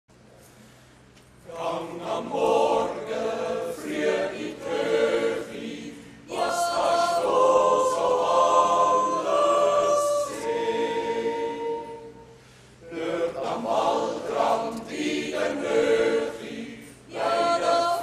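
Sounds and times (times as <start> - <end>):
choir singing held notes: 1.4 - 18.0.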